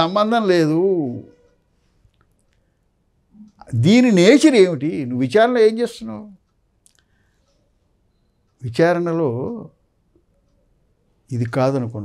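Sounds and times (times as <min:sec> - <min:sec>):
man speaking: 0:00.0 - 0:01.4, 0:03.4 - 0:06.4, 0:08.6 - 0:09.8, 0:11.3 - 0:12.0.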